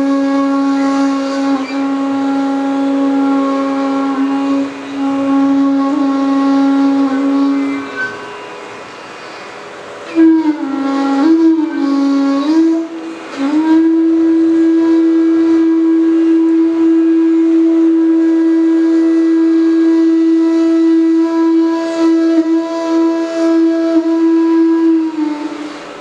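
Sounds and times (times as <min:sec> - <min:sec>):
bamboo flute long note: 0:00.0 - 0:26.0.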